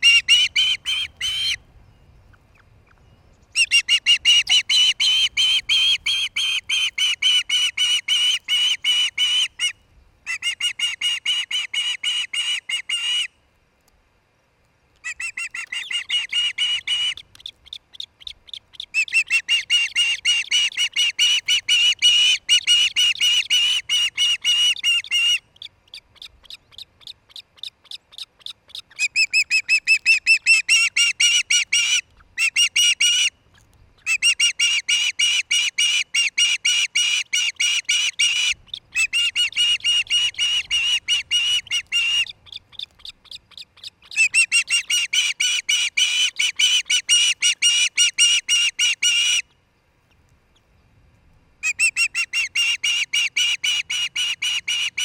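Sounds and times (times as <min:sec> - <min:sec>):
osprey calling: 0:00.0 - 0:01.6, 0:02.2 - 0:13.3, 0:15.0 - 0:50.2, 0:51.6 - 0:55.0.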